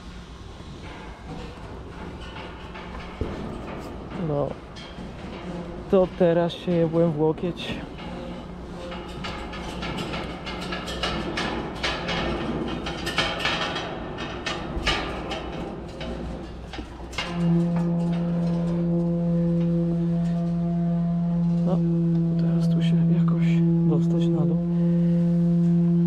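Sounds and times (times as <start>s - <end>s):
steady low hum: 0.0s - 26.0s
boots clanking on steel rungs: 0.6s - 19.7s.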